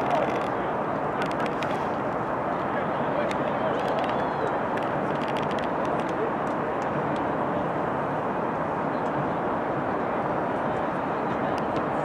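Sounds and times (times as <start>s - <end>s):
steady rushing outdoor noise: 0.0s - 12.0s.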